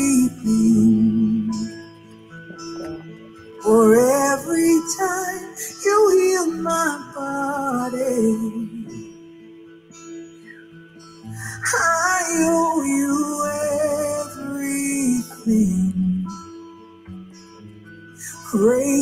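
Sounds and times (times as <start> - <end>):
guitar accompaniment: 0.0 - 19.0
woman singing gospel ballad: 11.6 - 16.1.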